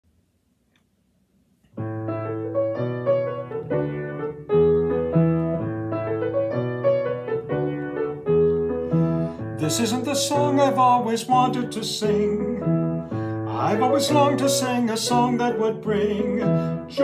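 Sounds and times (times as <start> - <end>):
upright piano chords: 1.7 - 17.0.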